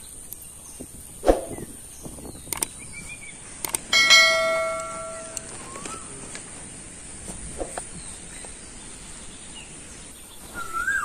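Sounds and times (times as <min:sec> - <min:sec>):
quick clicks: 0:02.5 - 0:02.8, 0:03.6 - 0:03.9
bright bell ding: 0:04.0 - 0:05.5.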